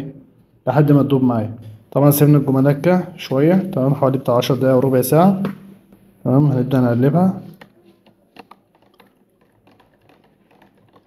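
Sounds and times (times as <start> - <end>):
stick tapping plastic container: 7.4 - 11.0.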